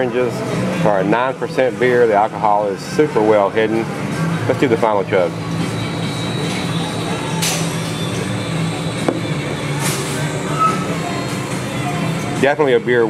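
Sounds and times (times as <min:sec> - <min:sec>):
chatter: 0:00.0 - 0:13.0
faint music: 0:00.0 - 0:13.0.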